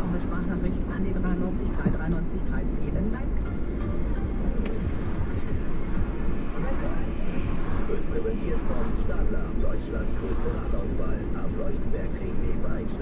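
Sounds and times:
car cabin road rumble: 0.0s - 13.0s
radio presenter talking: 4.4s - 13.0s.

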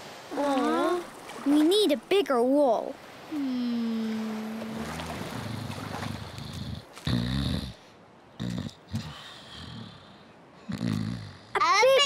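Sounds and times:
short snorts: 4.8s - 11.5s
man snoring: 5.0s - 7.8s.

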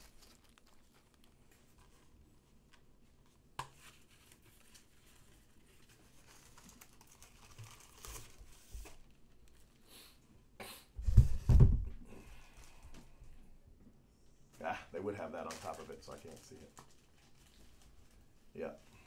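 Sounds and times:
paper and cardboard rustling: 0.0s - 9.6s, 15.4s - 19.0s.

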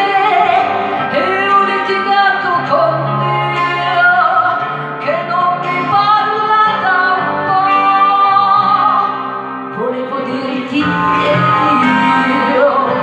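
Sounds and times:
pop ballad backing track: 0.0s - 13.0s
woman singing into microphone: 0.0s - 13.0s.

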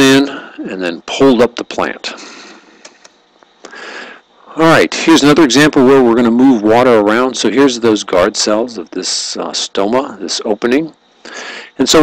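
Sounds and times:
faint hiss: 0.0s - 12.0s
person breathing: 2.2s - 2.9s, 3.6s - 4.5s, 11.2s - 11.8s.

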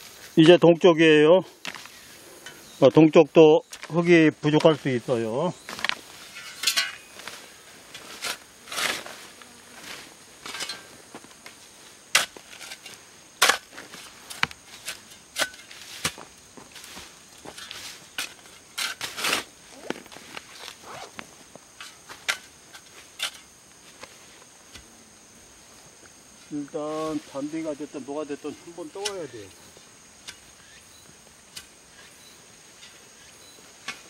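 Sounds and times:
shovel scraping stony soil: 5.6s - 21.2s, 30.2s - 34.0s.

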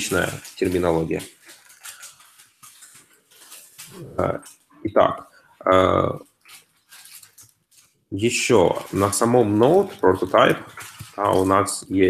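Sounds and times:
man's drawn-out hesitation sound: 4.0s - 6.2s.

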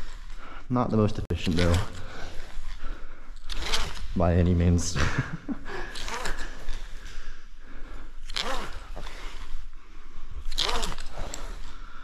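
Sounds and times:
rope scraping through ascenders: 0.0s - 0.4s, 1.4s - 7.4s, 8.0s - 12.0s
person breathing with effort: 1.9s - 3.5s, 5.5s - 12.0s.

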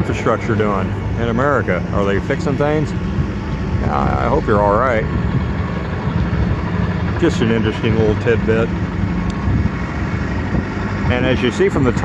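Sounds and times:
low rumble of street traffic: 0.0s - 12.0s
wind on microphone: 1.9s - 12.0s.

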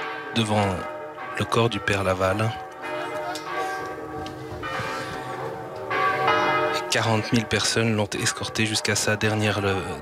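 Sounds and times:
church bells ringing: 0.0s - 10.0s.

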